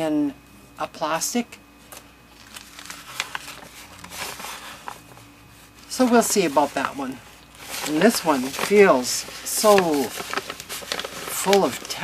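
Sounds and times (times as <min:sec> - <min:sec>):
paper sheets rustling: 0:02.3 - 0:12.0.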